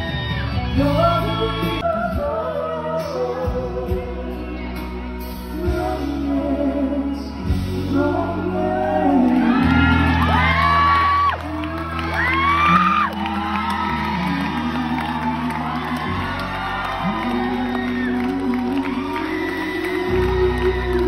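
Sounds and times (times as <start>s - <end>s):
man and woman singing duet: 0.7s - 21.0s
audience squeals and whoops: 8.5s - 21.0s.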